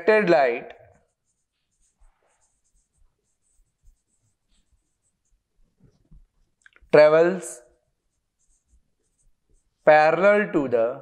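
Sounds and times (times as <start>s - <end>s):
marker pen on whiteboard: 0.0s - 11.0s.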